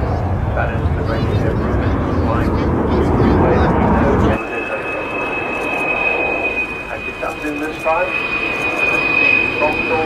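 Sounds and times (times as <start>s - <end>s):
faint voices: 0.0s - 10.0s
jet bomber flying past: 0.0s - 10.0s.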